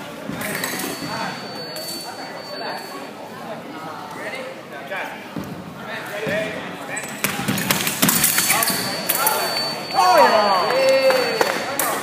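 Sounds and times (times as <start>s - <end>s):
voices in echoing hall: 0.0s - 12.0s.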